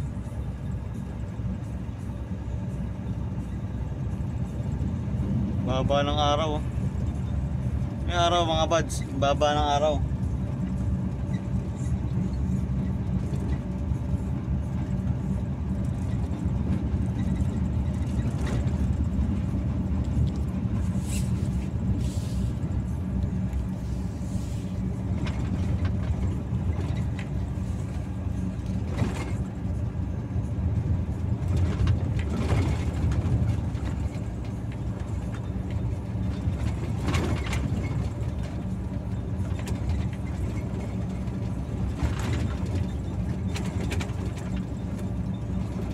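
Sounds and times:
truck engine droning: 0.0 - 45.9.

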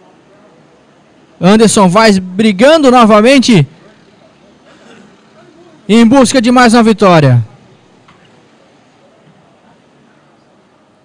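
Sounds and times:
distant kart engines: 0.0 - 11.0
man commentating: 1.4 - 3.7, 5.9 - 7.5.

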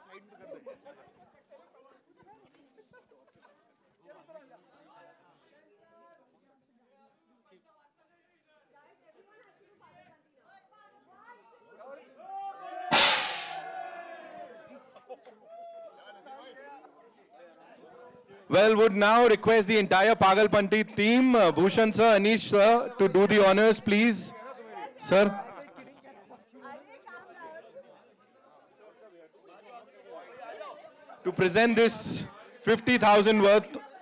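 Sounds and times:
faint chatter of people: 0.0 - 19.6, 22.6 - 34.0
confetti cannon blast: 12.9 - 13.6
crowd voices: 12.9 - 14.0, 31.3 - 33.8.

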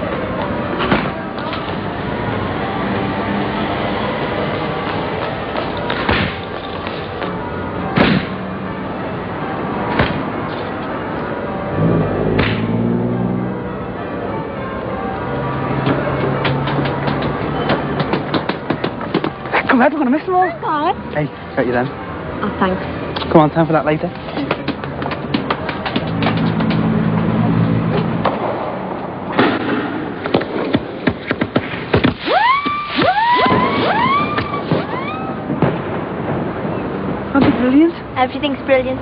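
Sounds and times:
fireworks bangs: 28.2 - 38.4.

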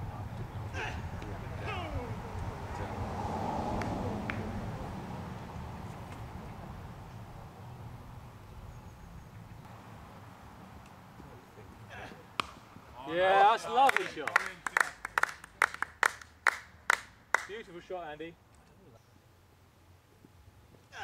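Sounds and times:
cricket bat striking ball: 12.3 - 12.8.

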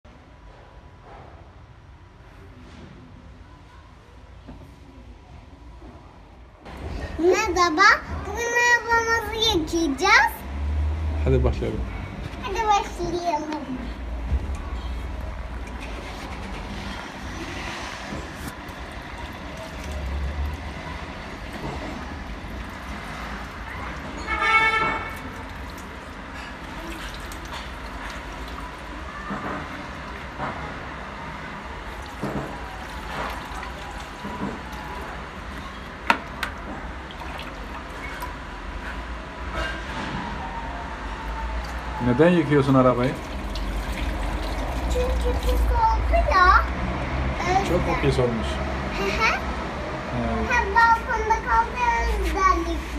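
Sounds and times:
city traffic rumble: 0.0 - 52.9
vehicle passing: 6.7 - 52.9
water splashing and trickling: 12.0 - 39.2, 41.6 - 49.6.

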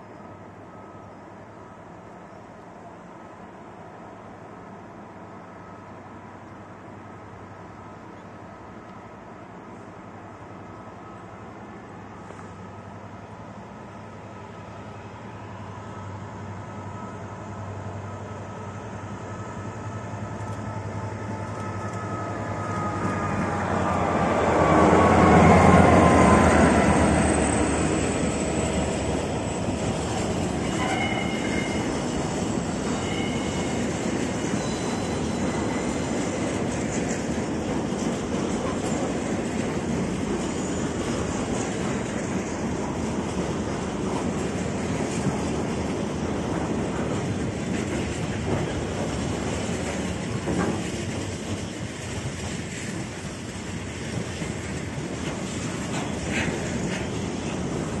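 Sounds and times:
diesel locomotive engine passing: 0.0 - 58.0
train wheels rumbling on rails: 7.9 - 58.0
wheel squeals: 25.7 - 36.8.

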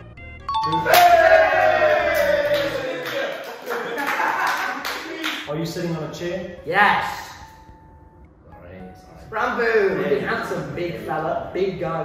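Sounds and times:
light background music: 0.0 - 12.0
bright chime: 0.5 - 1.3
group cheering and shouting: 0.5 - 5.5.

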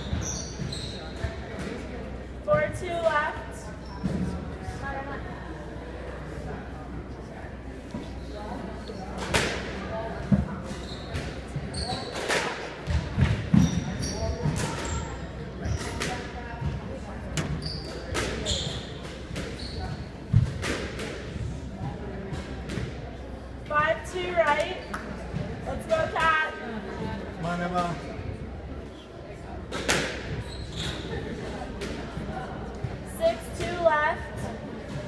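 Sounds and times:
squash ball hits: 9.2 - 9.8, 20.3 - 21.3, 29.7 - 30.4.

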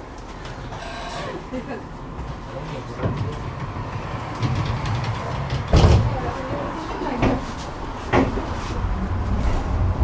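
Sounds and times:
tram interior rumble and hum: 0.0 - 10.0.

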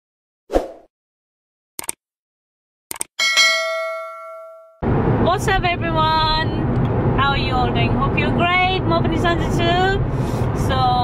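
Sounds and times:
bright bell ding: 3.2 - 4.8.

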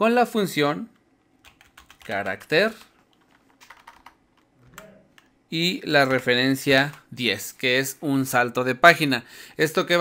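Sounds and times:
keyboard typing clicks: 0.9 - 5.3.

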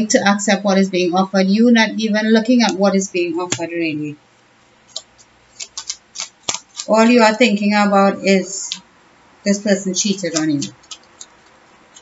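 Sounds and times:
cards being shuffled: 4.9 - 7.2, 10.0 - 12.0.

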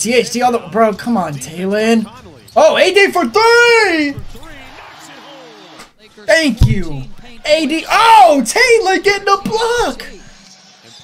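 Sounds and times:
announcer talking: 0.0 - 4.7, 6.1 - 10.4
arena crowd noise: 0.1 - 11.0.

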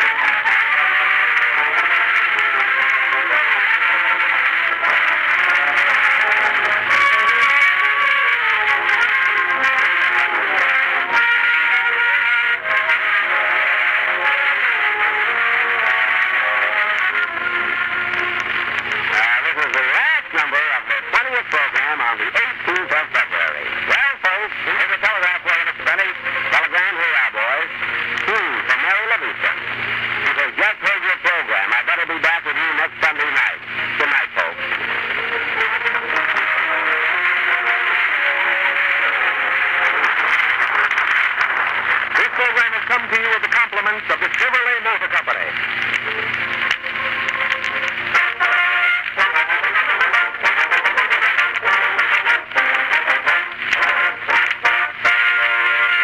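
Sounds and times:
old radio band music: 0.0 - 56.0
person speaking: 18.9 - 34.7, 41.8 - 47.1.

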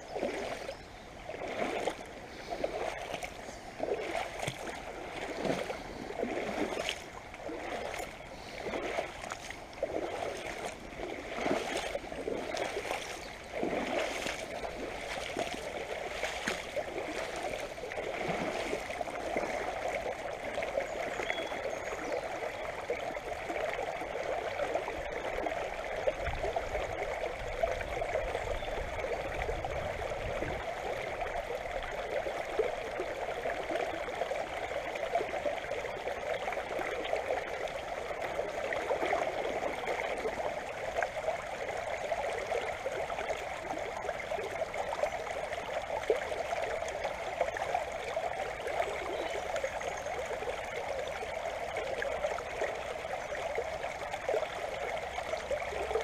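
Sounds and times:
river water over pebbles: 0.0 - 56.0.

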